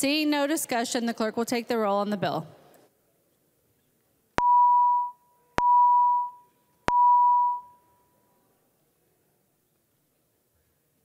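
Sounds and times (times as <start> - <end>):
electronic tones: 4.4 - 7.8.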